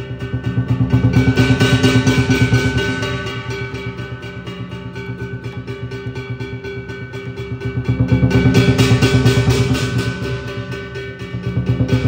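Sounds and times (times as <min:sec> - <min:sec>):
cymbals ringing: 0:00.0 - 0:12.0
gong ringing: 0:00.0 - 0:12.0
drum fast beat: 0:00.2 - 0:03.2.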